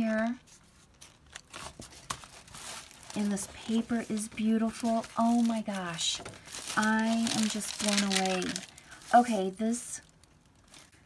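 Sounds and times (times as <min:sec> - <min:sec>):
paper rustling and crinkling: 0:00.4 - 0:11.0.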